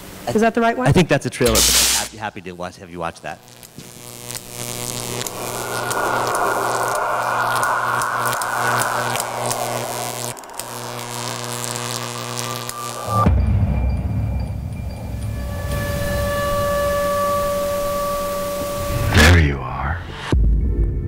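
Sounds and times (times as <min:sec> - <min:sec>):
sustained high tones: 0:03.4 - 0:19.2
deep rumble: 0:04.1 - 0:19.2
dark drone ambient music: 0:04.6 - 0:19.2.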